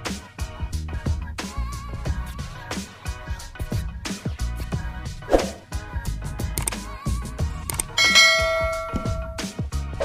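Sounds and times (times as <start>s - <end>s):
background music with steady beat: 0.0s - 10.0s
bell chime sound effect: 8.0s - 9.5s.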